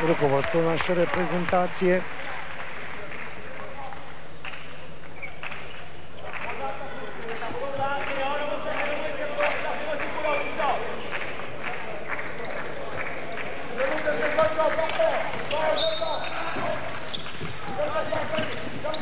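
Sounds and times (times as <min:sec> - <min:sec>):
voices and shouts: 0:06.2 - 0:19.0.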